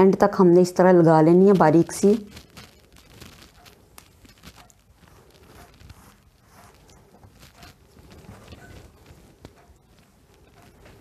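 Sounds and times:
soft rustling of tape measure: 1.3s - 11.0s.

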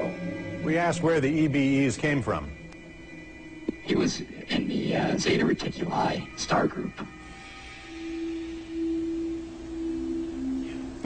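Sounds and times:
held synthesizer tones: 0.0s - 5.1s, 7.1s - 11.0s.

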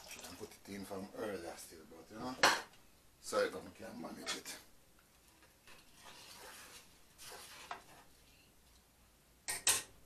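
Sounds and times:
kitchenware clinking: 2.4s - 2.7s.

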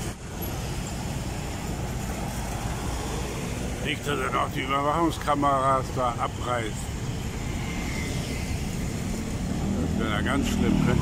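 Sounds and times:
car engines passing: 0.0s - 11.0s
steady low traffic rumble: 0.0s - 11.0s.

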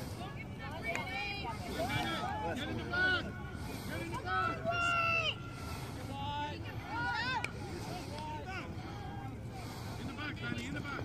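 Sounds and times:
people shouting and calling out: 0.2s - 9.7s.

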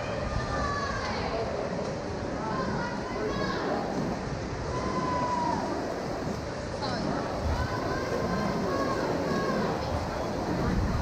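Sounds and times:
swimmers splashing: 0.0s - 11.0s.

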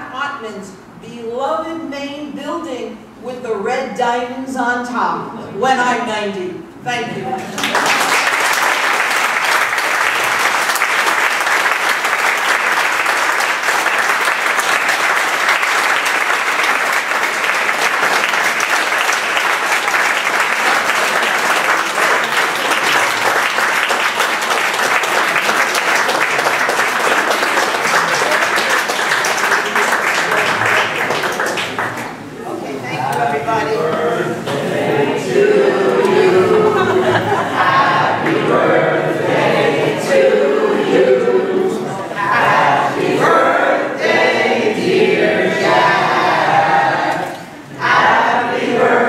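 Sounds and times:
audience applauding: 7.5s - 32.3s.

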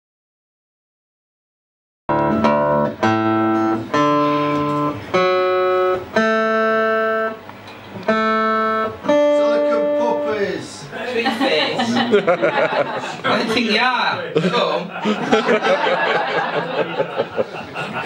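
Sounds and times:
acoustic guitar: 2.1s - 10.6s.

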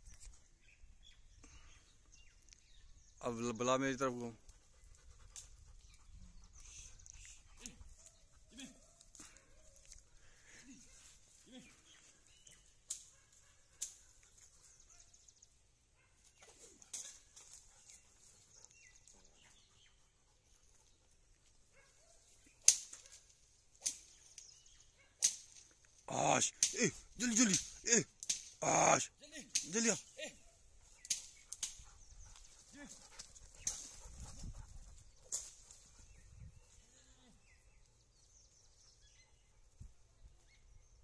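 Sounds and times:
rustling in dry grass: 4.5s - 15.3s
sharp twig snaps: 12.8s - 14.2s, 16.8s - 17.6s, 22.6s - 24.6s, 25.2s - 28.6s, 29.4s - 29.9s, 30.9s - 31.8s.

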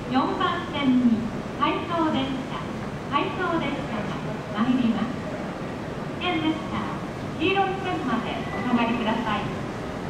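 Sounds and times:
woman's voice announcement: 0.0s - 5.2s, 6.2s - 9.6s.

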